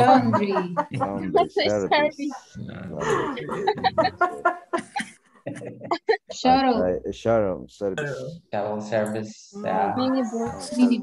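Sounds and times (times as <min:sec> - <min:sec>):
person laughing: 0:00.0 - 0:02.0, 0:02.7 - 0:07.6.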